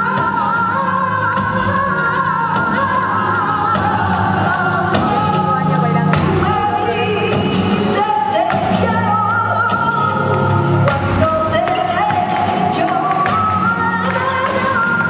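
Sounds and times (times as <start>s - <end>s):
flamenco accompaniment: 0.0s - 15.0s.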